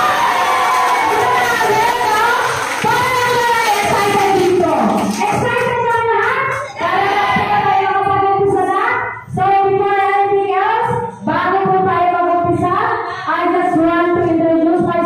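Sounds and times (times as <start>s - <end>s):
singer breathing: 13.0s - 13.4s.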